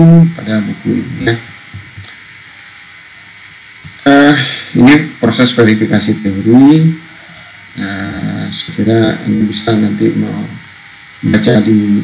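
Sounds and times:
faint hum: 0.0s - 12.0s
steady hiss: 0.0s - 12.0s.

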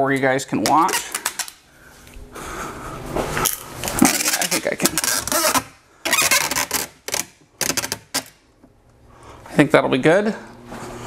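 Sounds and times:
rustling and clicking handling noise: 0.1s - 2.2s.

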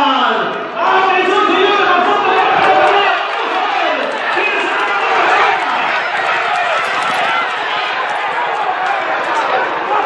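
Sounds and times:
crowd noise: 0.0s - 10.0s
voices shouting and talking: 0.0s - 10.0s.

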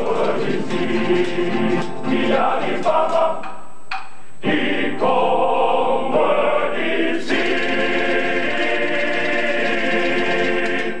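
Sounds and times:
male choir singing in harmony: 0.0s - 3.6s, 4.4s - 11.0s.

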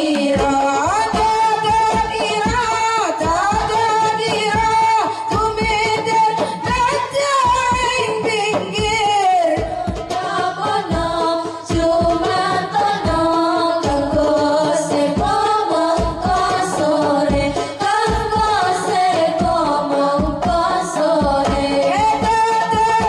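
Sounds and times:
frame drums beating: 0.0s - 23.0s
women singing in unison: 0.0s - 23.0s.

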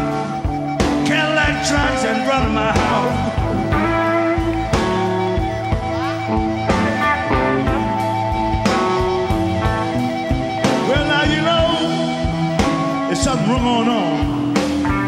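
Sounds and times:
electric guitar: 0.0s - 15.0s
steady drum beat: 0.0s - 15.0s.

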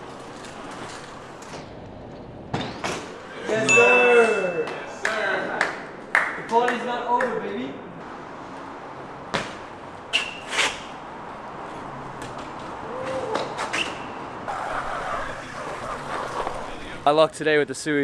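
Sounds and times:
street background noise: 0.0s - 18.0s
high metallic ring: 3.6s - 5.0s.

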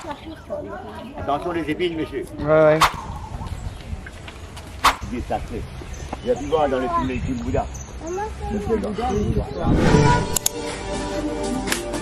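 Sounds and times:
rushing noise: 9.6s - 10.5s.

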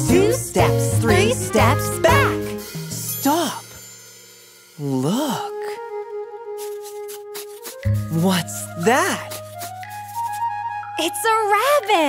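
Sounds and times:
children's song music: 0.0s - 6.0s, 7.8s - 12.0s.

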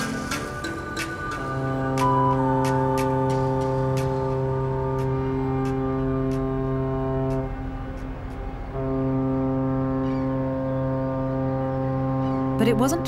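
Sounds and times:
ship's horn blowing: 1.3s - 13.0s.

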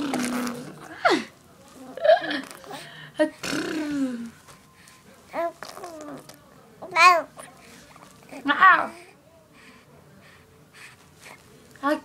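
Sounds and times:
baby cooing: 0.0s - 0.9s, 5.3s - 7.4s.

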